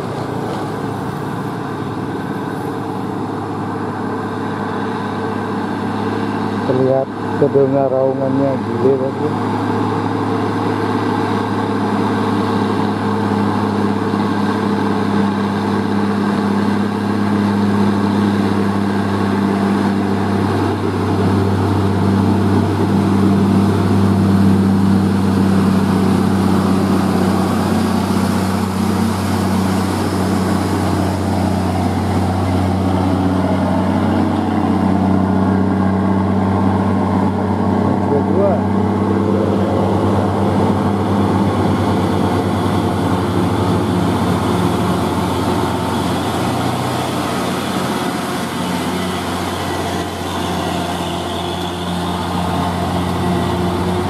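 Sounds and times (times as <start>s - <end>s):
truck diesel engine droning: 0.0s - 54.0s.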